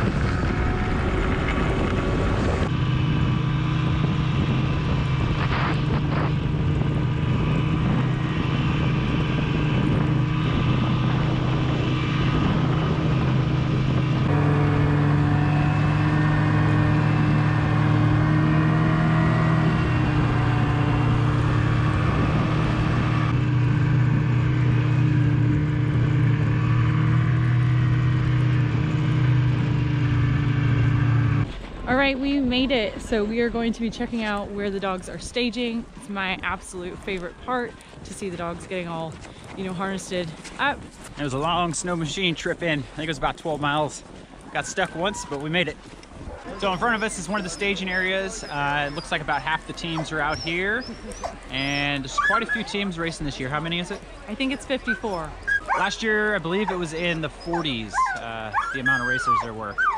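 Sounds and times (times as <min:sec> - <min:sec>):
snowmobile engine running: 0:00.0 - 0:59.9.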